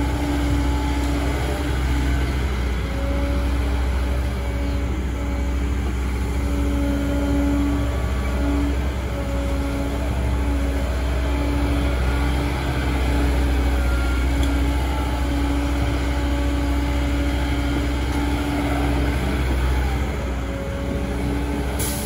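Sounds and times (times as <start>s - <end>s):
excavator diesel engine under load: 0.0s - 22.0s.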